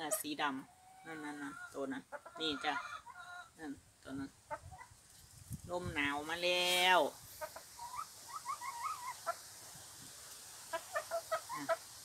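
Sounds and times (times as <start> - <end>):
hens clucking: 0.0 - 5.0, 6.4 - 9.7, 10.6 - 12.0.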